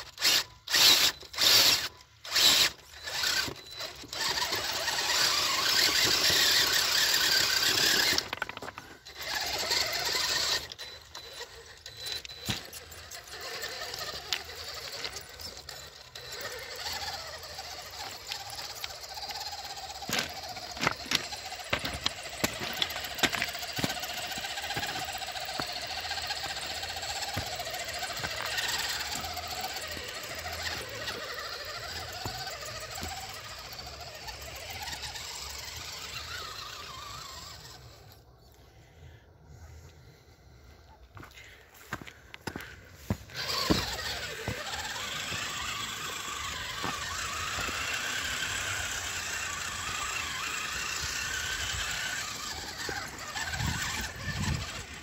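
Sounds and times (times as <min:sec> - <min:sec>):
tyres clicking and scraping on rock: 0:00.0 - 0:38.2, 0:41.1 - 0:55.0
electric motor whining: 0:00.0 - 0:38.3, 0:41.9 - 0:55.0.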